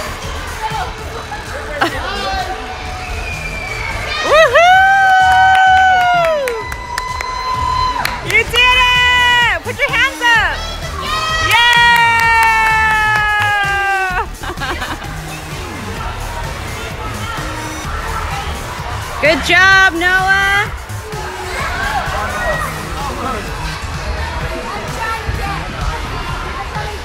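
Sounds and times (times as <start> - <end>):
background music: 0.0 - 27.0
crowd noise: 0.0 - 27.0
high whooping cheers: 3.1 - 9.6, 11.0 - 14.3.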